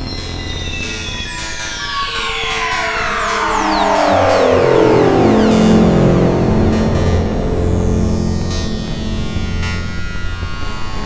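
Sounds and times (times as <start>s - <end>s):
buzzing synthesizer drone: 1.3s - 11.0s.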